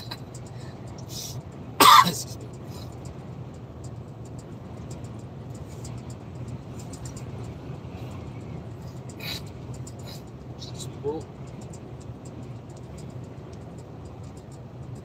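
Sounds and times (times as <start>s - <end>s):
truck cab driving drone: 0.0s - 15.0s
person coughing: 1.8s - 2.4s.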